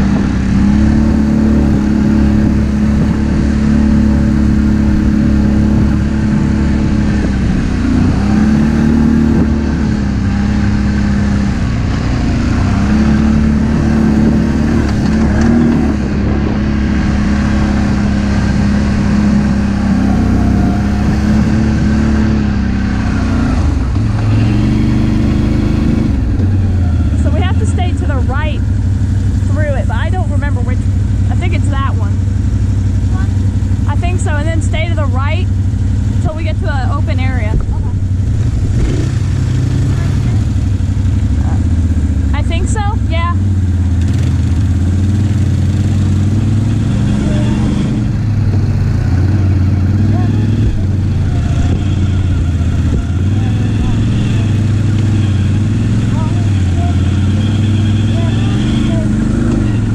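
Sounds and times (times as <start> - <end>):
quad bike engine revving: 0.0 - 59.9
voices: 26.7 - 28.8, 29.4 - 32.2, 33.0 - 35.6, 36.2 - 38.2, 39.7 - 43.5, 46.5 - 59.9.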